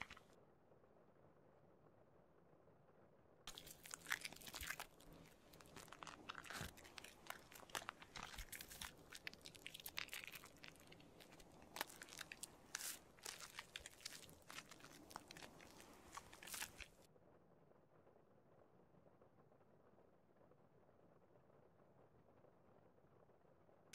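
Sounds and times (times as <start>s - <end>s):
shaving brush crackling in foam: 0.0s - 0.2s, 3.5s - 17.0s.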